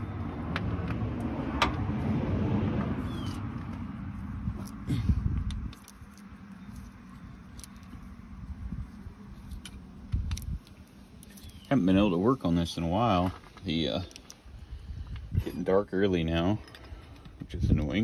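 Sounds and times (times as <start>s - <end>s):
low rumble: 0.0s - 11.4s.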